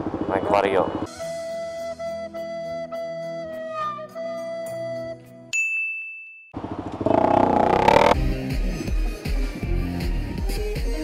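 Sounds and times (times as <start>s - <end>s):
motorcycle running in traffic: 6.6s - 8.2s.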